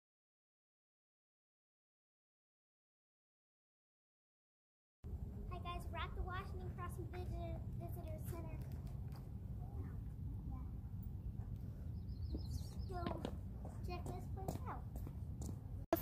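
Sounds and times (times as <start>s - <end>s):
steady low rumble: 5.0s - 16.0s
child talking: 5.5s - 8.8s, 9.6s - 10.8s, 12.5s - 15.1s.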